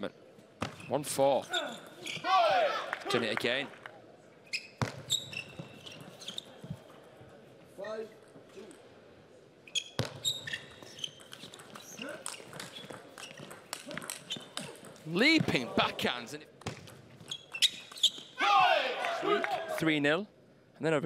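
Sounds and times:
shoes squeaking on floor: 0:00.7 - 0:02.3, 0:04.5 - 0:06.9, 0:09.6 - 0:15.6, 0:17.1 - 0:18.4
person shouting: 0:18.4 - 0:19.6.

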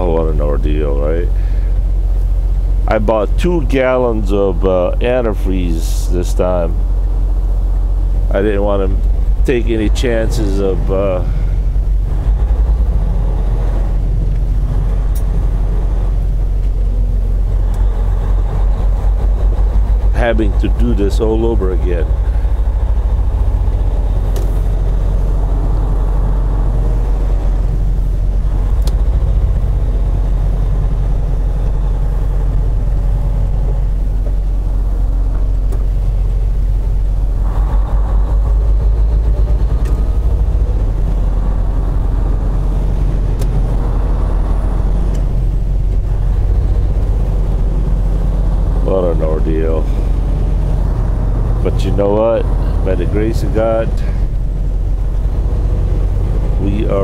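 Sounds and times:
diesel truck engine droning: 0:00.0 - 0:57.0.

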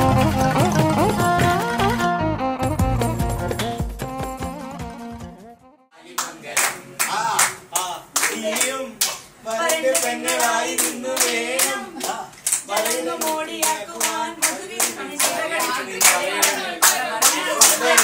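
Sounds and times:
people clapping in rhythm: 0:06.1 - 0:18.0.

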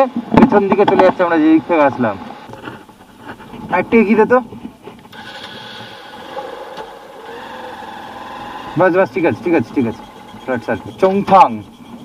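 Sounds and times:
motorcycle engine idling: 0:05.2 - 0:12.0.

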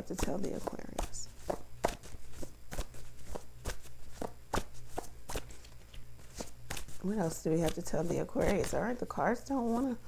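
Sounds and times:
cards being shuffled: 0:00.0 - 0:09.0.

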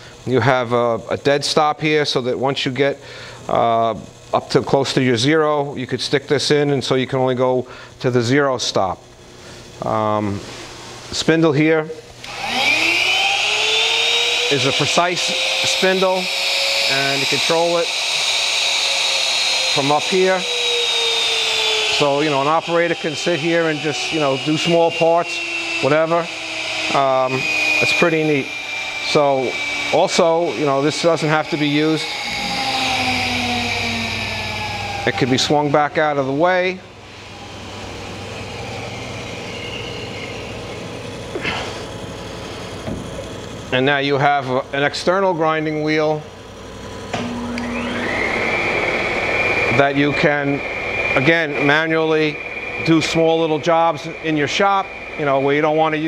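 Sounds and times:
grinder spindle whine: 0:00.0 - 0:56.0.

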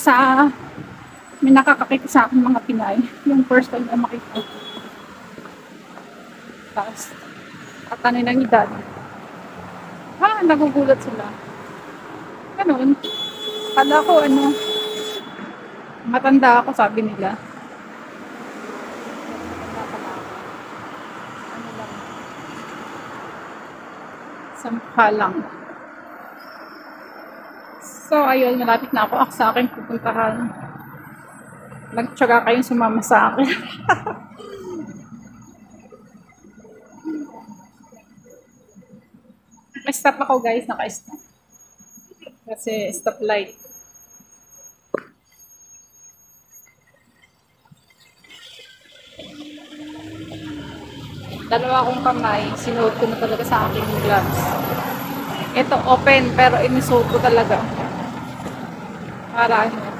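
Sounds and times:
road noise: 0:00.0 - 0:59.9
street traffic hiss and rumble: 0:00.0 - 0:59.9
vehicle engine hum: 0:00.0 - 0:59.9.

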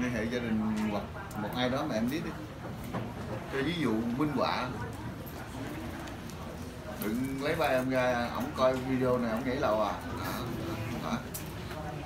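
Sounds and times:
room noise: 0:00.0 - 0:12.0
faint voice murmuring: 0:10.0 - 0:12.0.

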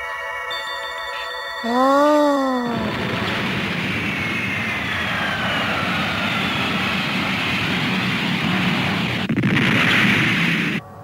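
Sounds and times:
spacecraft engine roar with whine: 0:02.9 - 0:09.3.

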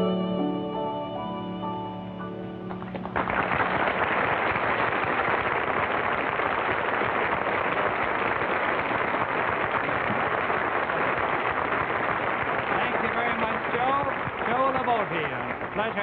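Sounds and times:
audience applauding: 0:02.6 - 0:16.0.

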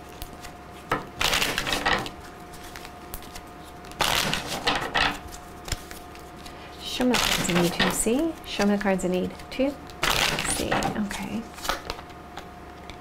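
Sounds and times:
cards being shuffled: 0:00.1 - 0:13.0.

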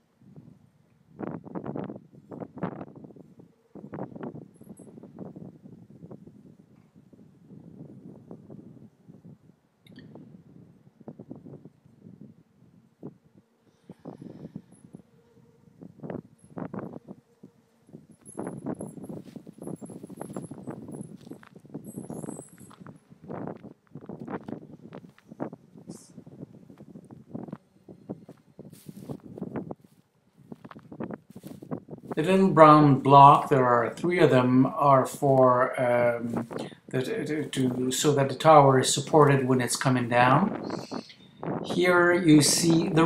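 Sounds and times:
footsteps through dry grass: 0:18.4 - 0:25.7, 0:26.4 - 0:32.2.

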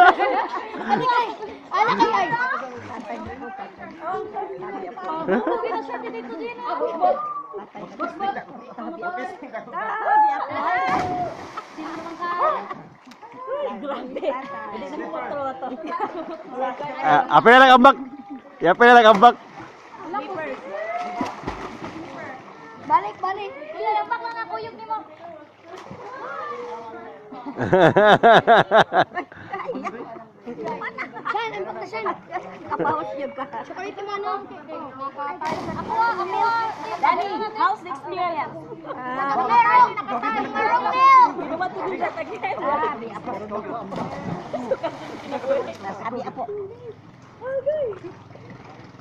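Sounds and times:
voices calling and chattering: 0:00.0 - 0:49.0
water splashing from swimmers: 0:10.4 - 0:13.6, 0:18.0 - 0:24.4, 0:25.1 - 0:27.0, 0:35.4 - 0:37.7, 0:41.0 - 0:46.3.

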